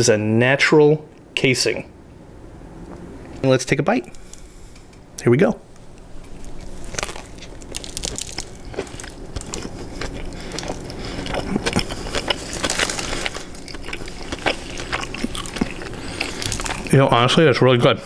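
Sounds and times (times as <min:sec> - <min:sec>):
person chewing food: 0:05.7 - 0:16.9
small crunches and clicks: 0:05.8 - 0:16.9.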